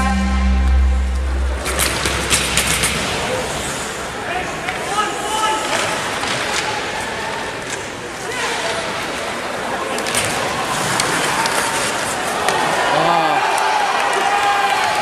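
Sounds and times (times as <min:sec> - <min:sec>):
arena goal horn: 0:00.0 - 0:02.2
sticks and puck clacking on ice: 0:04.6 - 0:09.2, 0:09.8 - 0:12.8.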